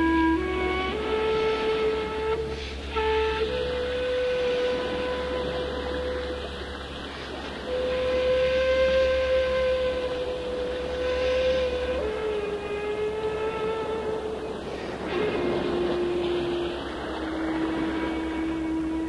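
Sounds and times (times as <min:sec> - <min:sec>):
bamboo flute long notes: 0:00.0 - 0:19.0.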